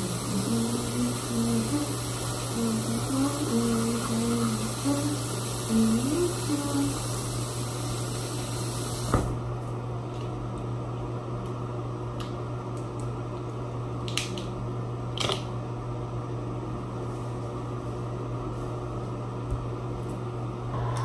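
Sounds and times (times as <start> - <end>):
ventilation fan humming: 0.0 - 21.0.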